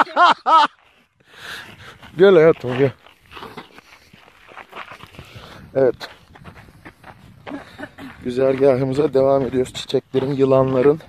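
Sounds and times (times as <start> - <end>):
woman laughing: 0.0 - 0.8, 7.4 - 8.2
faint breath: 1.0 - 2.1, 5.1 - 5.7.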